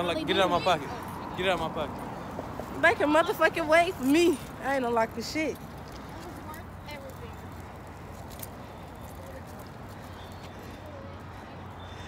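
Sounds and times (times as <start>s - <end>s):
distant faint voices: 0.0s - 12.0s.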